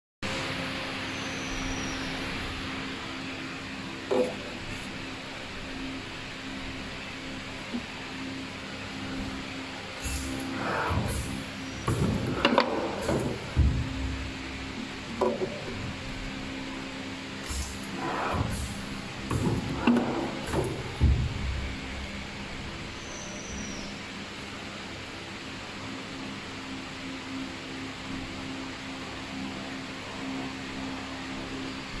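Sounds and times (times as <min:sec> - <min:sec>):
machine hum: 0:00.2 - 0:32.0
sharp clicks and knocks: 0:04.1 - 0:04.9, 0:10.0 - 0:16.3, 0:17.4 - 0:22.3.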